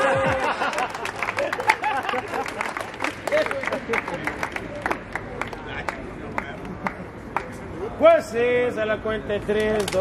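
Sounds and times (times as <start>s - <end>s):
crowd hand claps: 0.0s - 7.6s, 9.6s - 10.0s
crowd chatter: 1.4s - 10.0s.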